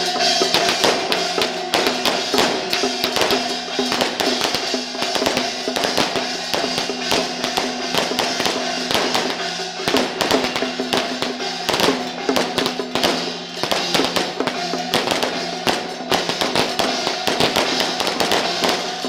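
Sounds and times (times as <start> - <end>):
cymbals clashing: 0.0 - 19.0
drum beating: 0.0 - 19.0.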